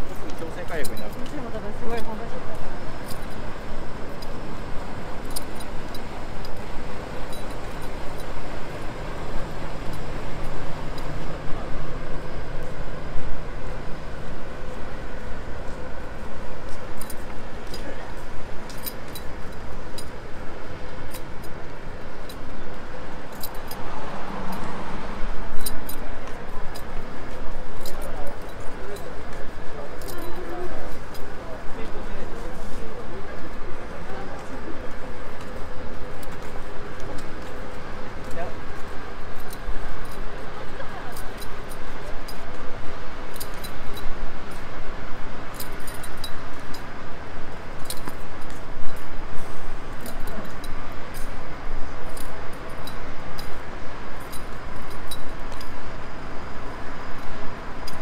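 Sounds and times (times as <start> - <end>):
low rumble of traffic: 0.0 - 58.0
murmur of passers-by talking: 0.0 - 58.0.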